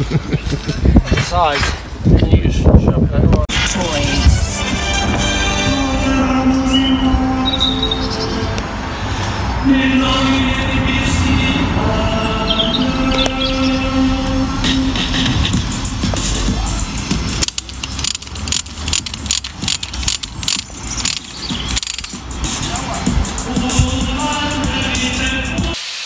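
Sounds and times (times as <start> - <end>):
background music with held notes: 3.6 - 8.1
tie-wire tool clicking and rattling: 17.3 - 22.4.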